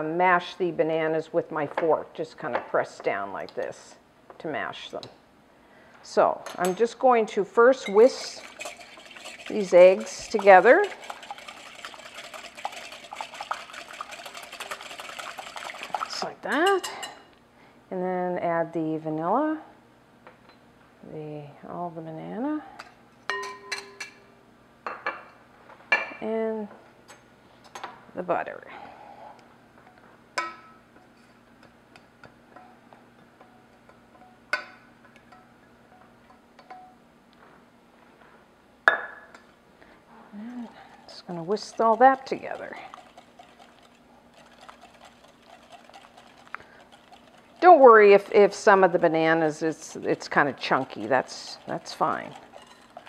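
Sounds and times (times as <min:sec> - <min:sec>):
whisk ticking against glass: 0:07.9 - 0:16.3, 0:41.1 - 0:53.0
egg sloshing in bowl: 0:07.9 - 0:16.4, 0:40.8 - 0:53.0
metal clinking against glass bowl: 0:23.3 - 0:24.2.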